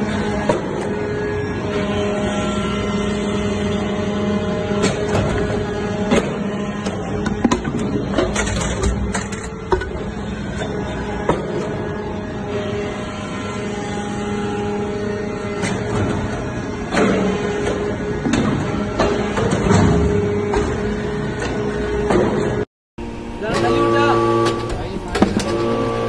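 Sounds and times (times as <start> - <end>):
machine hum: 0.0 - 26.0.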